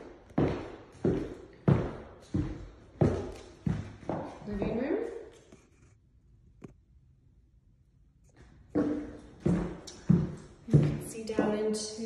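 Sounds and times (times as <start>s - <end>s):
footstep on hardwood floor: 0.0s - 4.9s, 8.8s - 11.6s.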